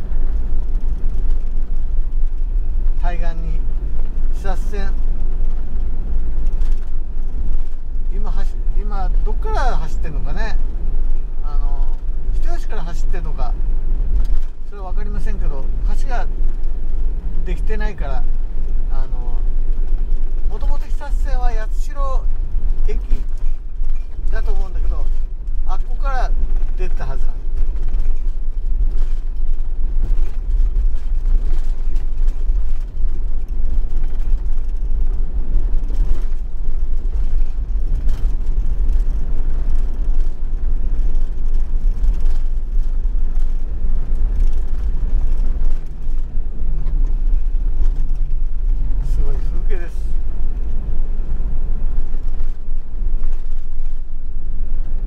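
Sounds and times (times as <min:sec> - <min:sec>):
van engine and tyre rumble: 0:00.0 - 0:55.0.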